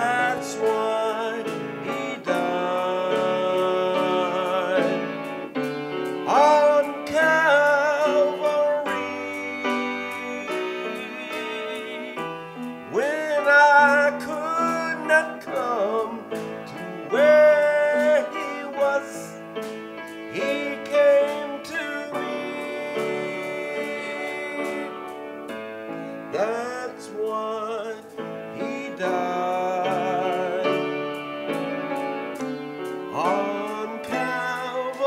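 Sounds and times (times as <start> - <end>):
instrumental accompaniment: 0.0 - 35.0
man singing gospel: 0.0 - 35.0.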